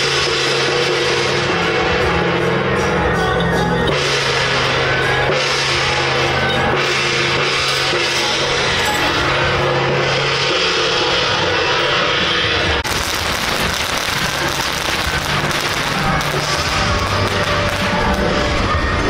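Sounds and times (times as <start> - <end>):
procession music with drums and cymbals: 0.0 - 19.0
firecracker crackles: 3.9 - 19.0.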